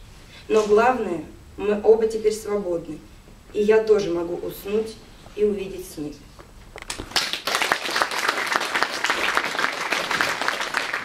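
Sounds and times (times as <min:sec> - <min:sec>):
audience applauding: 0:06.9 - 0:11.0.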